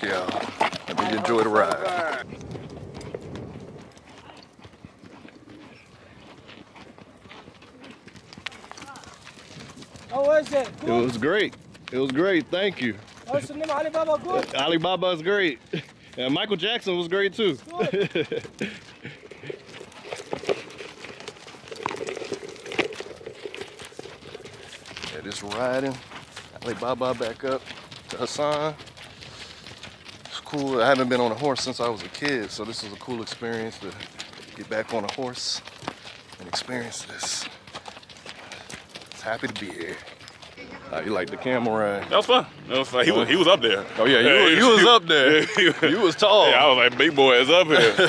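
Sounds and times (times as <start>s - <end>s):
horse hooves on sand: 0.0s - 48.0s.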